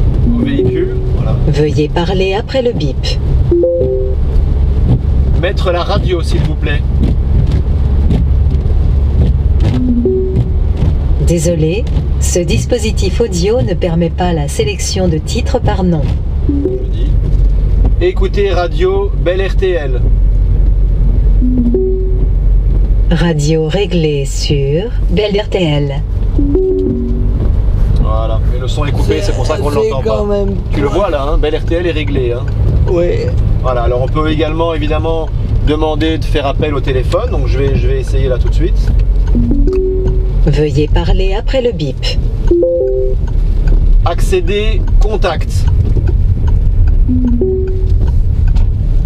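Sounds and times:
car road noise in cabin: 0:00.0 - 0:49.0
diesel engine and tyres drone: 0:00.0 - 0:49.0
two-note electronic beep: 0:00.2 - 0:01.2, 0:03.5 - 0:04.3, 0:09.8 - 0:10.6, 0:16.5 - 0:17.1, 0:21.4 - 0:22.3, 0:26.4 - 0:27.4, 0:39.4 - 0:40.4, 0:42.5 - 0:43.2, 0:47.1 - 0:48.0.

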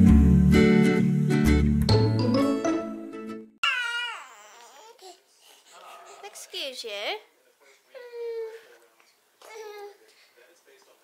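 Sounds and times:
acoustic guitar music: 0:00.0 - 0:03.5
baby wailing: 0:03.6 - 0:06.4.

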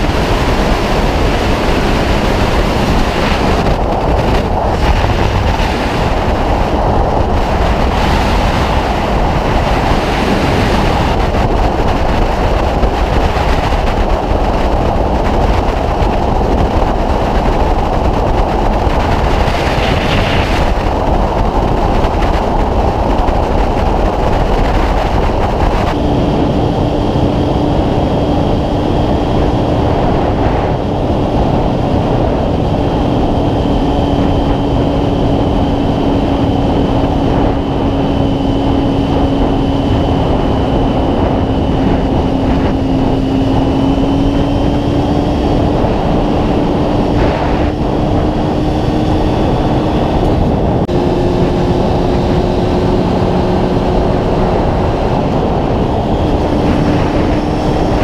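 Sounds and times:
motorcycle engine running: 0:00.0 - 0:58.0
wind rush on microphone: 0:00.0 - 0:58.0.

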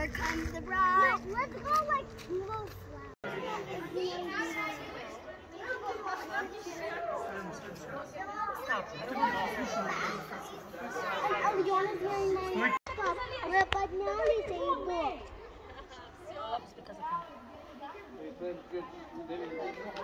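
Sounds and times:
children and adults chattering: 0:00.0 - 0:20.0.

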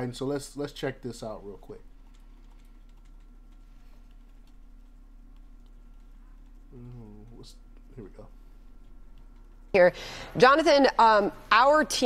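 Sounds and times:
steady low hum: 0:00.0 - 0:12.0
computer keyboard clicks: 0:02.0 - 0:07.4.

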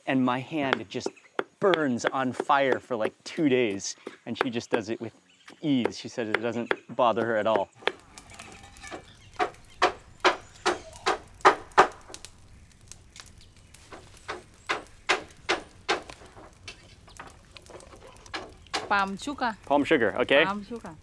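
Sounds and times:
pestle pounding in a mortar: 0:00.7 - 0:03.3.

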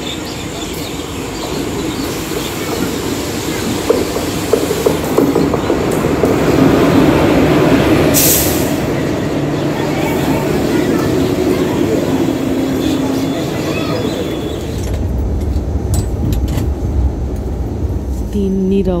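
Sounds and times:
electric locomotive rumble: 0:00.0 - 0:19.0.

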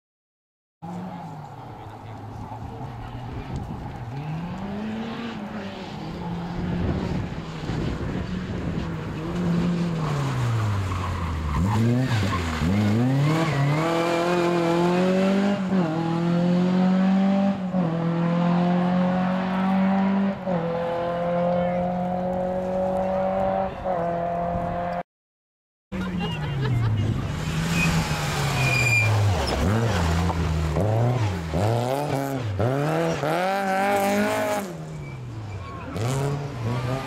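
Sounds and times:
rally car engine revving: 0:00.8 - 0:25.0, 0:26.1 - 0:37.0.

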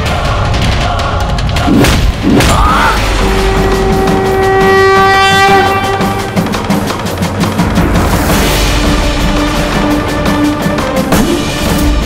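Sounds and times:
long horn-like note: 0:03.2 - 0:06.6.

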